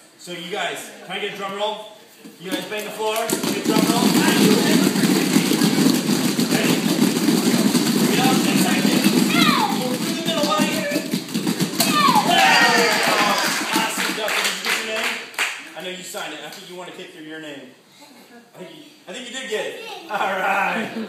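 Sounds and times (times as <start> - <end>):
hands slapping on a padded mat: 2.5 - 14.1
children cheering and squealing: 11.8 - 13.4.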